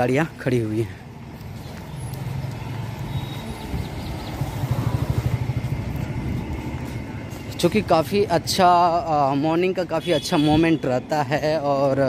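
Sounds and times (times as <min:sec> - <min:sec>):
street noise: 0:00.0 - 0:12.0
vehicle engine running: 0:02.2 - 0:07.6.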